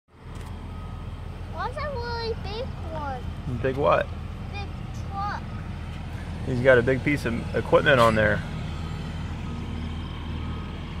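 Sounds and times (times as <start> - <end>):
truck engine rumbling: 0.1 - 11.0
child's high voice: 1.5 - 3.3, 4.5 - 5.5.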